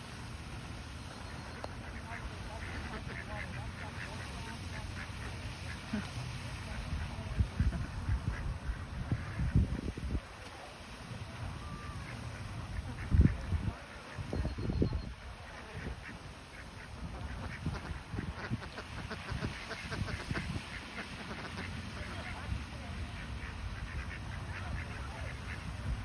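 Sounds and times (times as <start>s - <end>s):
ducks quacking: 1.0s - 10.2s, 11.3s - 26.0s.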